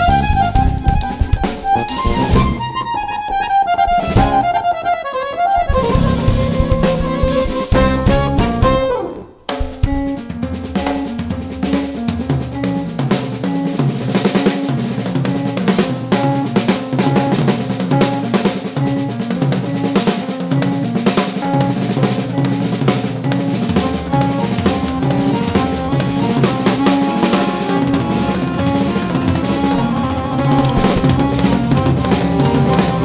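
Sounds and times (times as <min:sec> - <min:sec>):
drum kit played fast: 0:00.0 - 0:04.8, 0:05.5 - 0:33.0.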